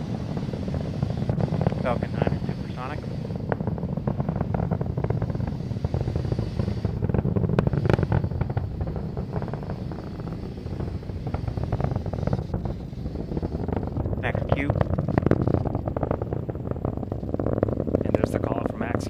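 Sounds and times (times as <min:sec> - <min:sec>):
rocket engines rumbling and crackling: 0:00.0 - 0:19.0
sharp cracks: 0:00.0 - 0:19.0.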